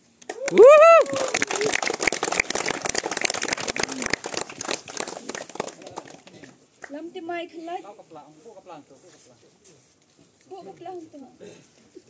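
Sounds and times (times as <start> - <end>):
crowd applauding: 0.3 - 6.5.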